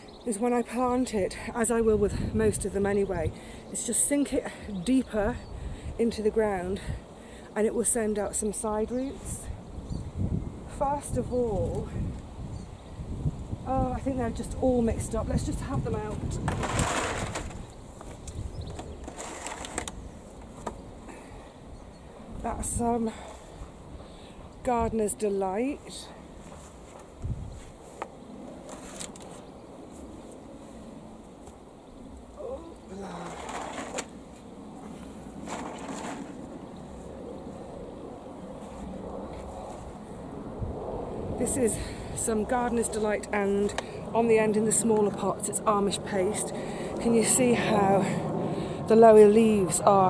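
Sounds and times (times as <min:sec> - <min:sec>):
wind buffeting microphone: 0:00.0 - 0:28.5, 0:31.9 - 0:50.0
rustling seedlings: 0:15.4 - 0:20.7, 0:28.6 - 0:30.7, 0:32.4 - 0:37.2
steady low rumble: 0:36.3 - 0:50.0.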